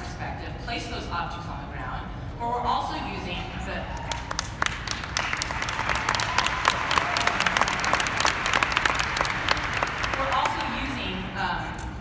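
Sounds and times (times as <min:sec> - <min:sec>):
audience applauding: 0:04.1 - 0:10.7.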